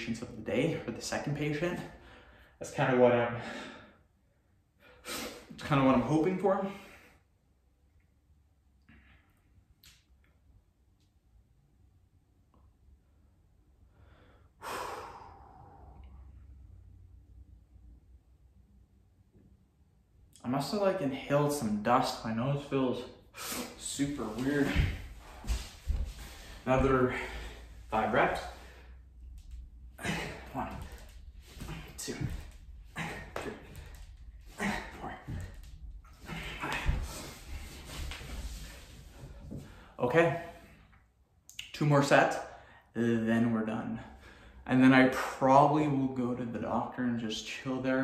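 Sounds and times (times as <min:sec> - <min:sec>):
man breathing hard: 0:13.8 - 0:16.6, 0:23.3 - 0:40.0.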